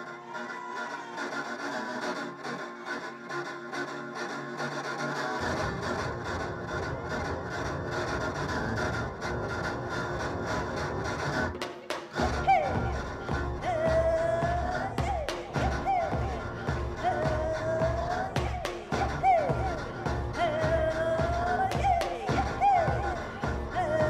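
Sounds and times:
heavy drums and bass: 12.2s - 24.0s.

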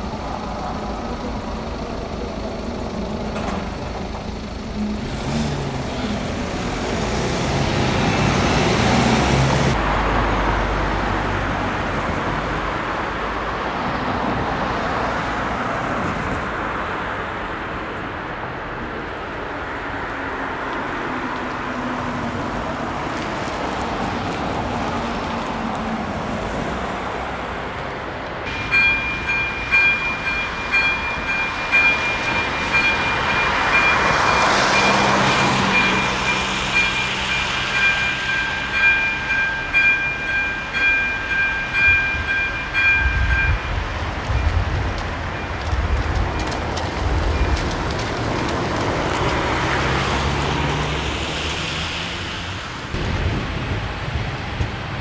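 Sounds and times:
train rumbling: 0.0s - 55.0s.

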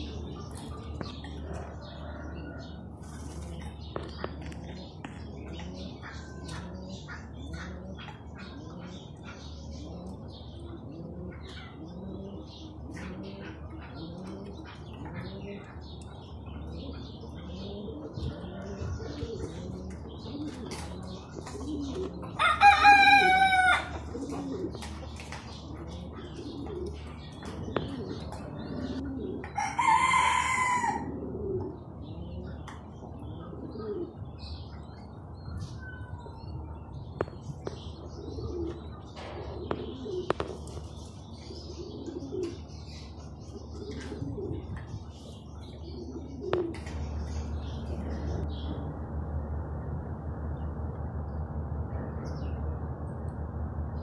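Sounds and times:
pigeons cooing: 0.0s - 49.7s.

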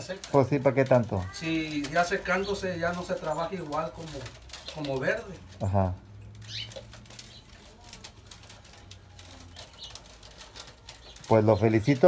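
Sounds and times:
cane strips clicking and rustling: 0.0s - 12.0s.

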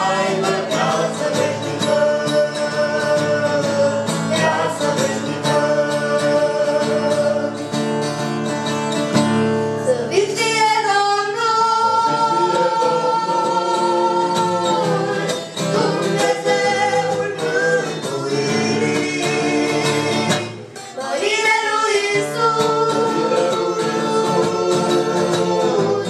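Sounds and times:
group singing in harmony: 0.0s - 8.4s, 9.8s - 26.0s
strummed acoustic guitar: 0.0s - 26.0s.

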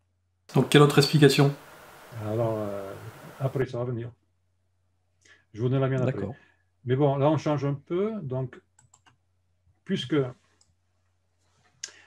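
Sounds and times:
person speaking: 0.5s - 3.7s, 5.6s - 6.4s
faint clicks: 8.7s - 9.2s, 10.6s - 10.8s.

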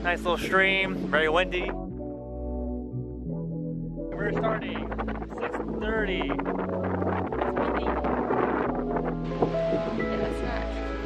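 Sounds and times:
background music with bass: 0.0s - 11.0s
wind noise on microphone: 0.0s - 11.0s.

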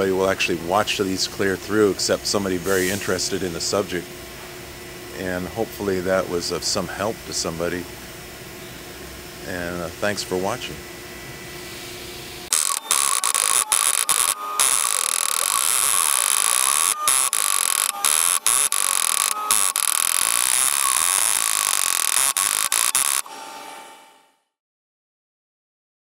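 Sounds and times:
engraving machine high-pitched whine: 12.3s - 24.3s.

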